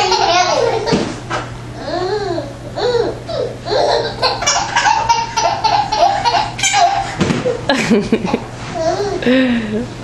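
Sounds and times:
baby laughing: 0:00.0 - 0:01.0, 0:01.8 - 0:09.2.

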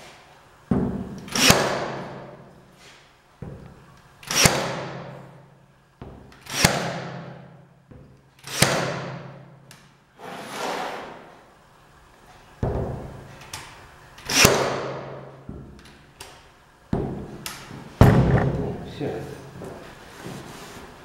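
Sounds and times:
pin nailer firing: 0:01.2 - 0:02.4, 0:04.2 - 0:05.3, 0:06.4 - 0:07.5, 0:08.4 - 0:09.4, 0:14.2 - 0:15.3.

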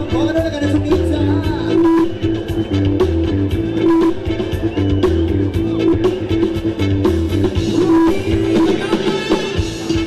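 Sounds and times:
live band dance music: 0:00.0 - 0:10.0
heavy bass pulse: 0:01.0 - 0:08.8.

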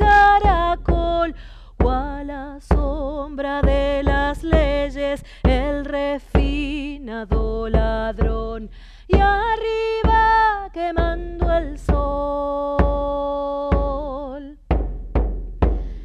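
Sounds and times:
woman singing folk song: 0:00.0 - 0:14.7
frame drum beats: 0:00.0 - 0:16.0.

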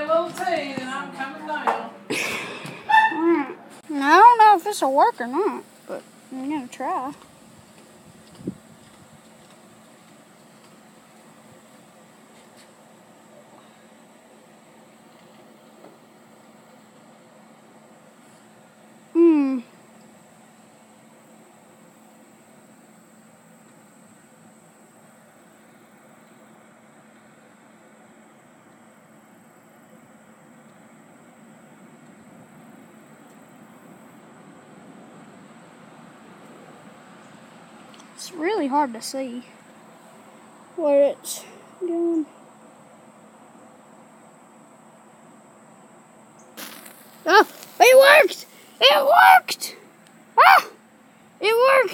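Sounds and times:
outdoor background noise: 0:00.0 - 0:51.9
loud call falling in pitch: 0:02.9 - 0:03.4.

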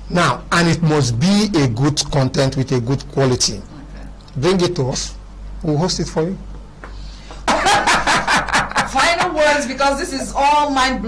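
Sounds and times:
low electrical hum: 0:00.0 - 0:11.0
people laughing: 0:07.4 - 0:09.4.

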